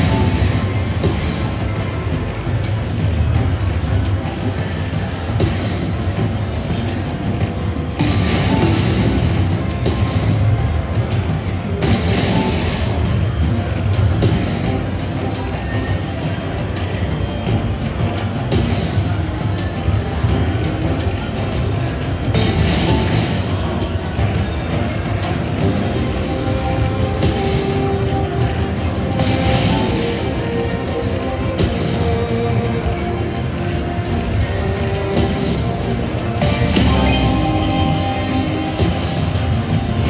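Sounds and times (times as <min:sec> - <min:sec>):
slot machine music and effects: 0:00.0 - 0:40.0.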